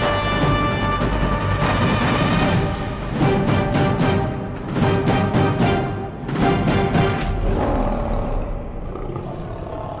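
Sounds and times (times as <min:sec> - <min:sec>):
lion roaring: 0:07.3 - 0:10.0.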